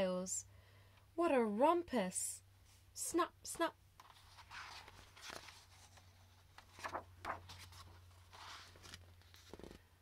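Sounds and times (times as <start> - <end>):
paper page rustling: 4.0 - 9.8.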